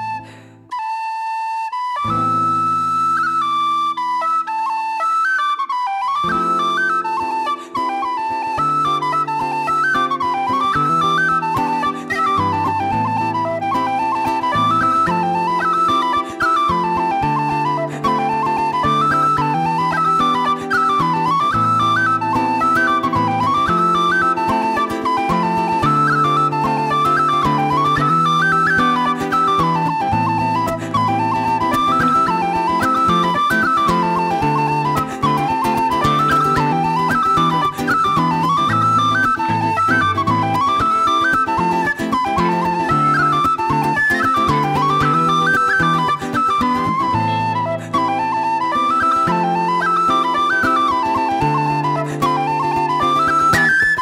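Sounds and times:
tin whistle playing a reel: 0.0 - 54.0
strummed guitar: 6.2 - 54.0.

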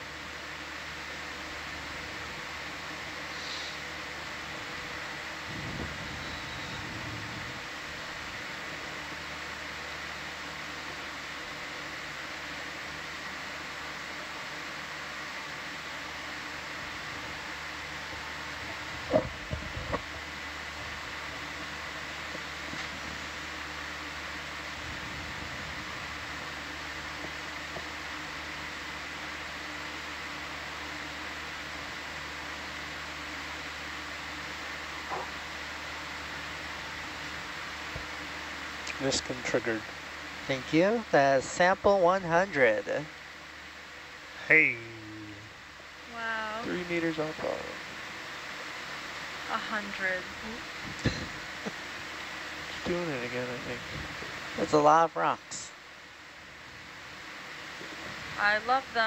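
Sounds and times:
equipment hiss and hum: 0.0 - 59.0.

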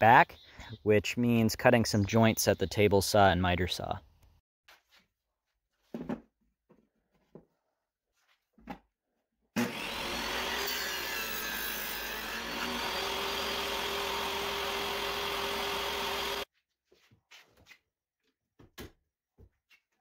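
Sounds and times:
table saw cutting wood: 9.6 - 16.5.

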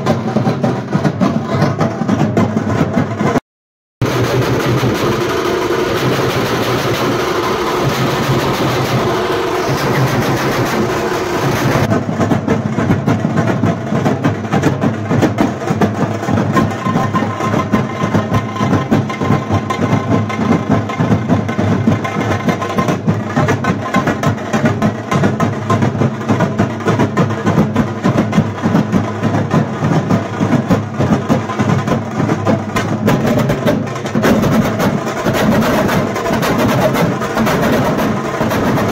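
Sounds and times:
drum band playing fast rhythm: 0.0 - 3.4, 4.0 - 38.9.

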